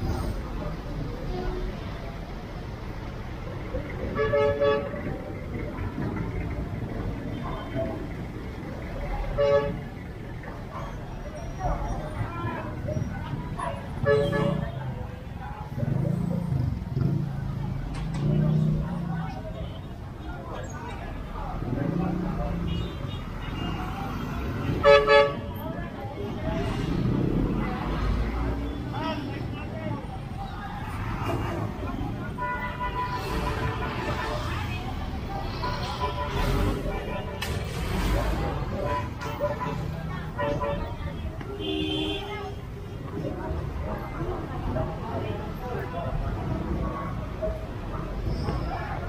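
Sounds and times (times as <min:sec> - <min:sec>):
street traffic rumble: 0:00.0 - 0:49.0
voices: 0:00.0 - 0:49.0.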